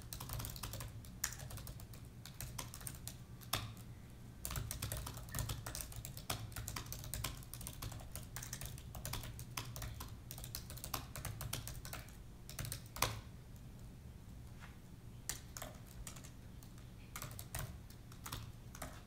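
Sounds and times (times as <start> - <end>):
typing on laptop keyboard: 0.0 - 13.3, 15.3 - 19.0.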